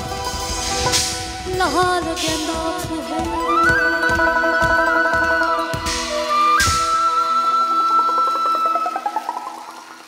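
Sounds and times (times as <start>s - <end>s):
folk band playing: 0.0s - 9.3s.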